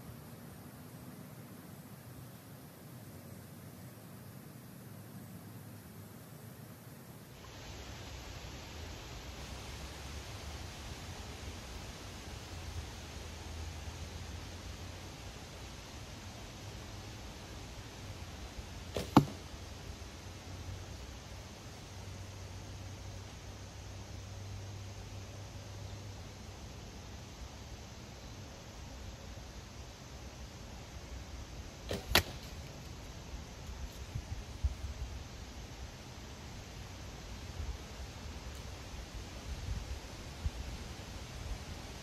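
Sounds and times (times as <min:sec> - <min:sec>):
steady hiss: 0:00.0 - 0:42.0
bowstring snap: 0:18.9 - 0:19.6, 0:31.9 - 0:33.0
faint click: 0:38.5 - 0:38.7.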